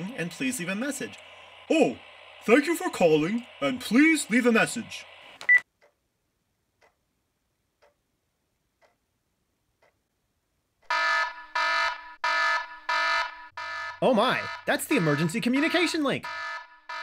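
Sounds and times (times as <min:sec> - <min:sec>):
repeating electronic alarm: 0:10.9 - 0:17.0.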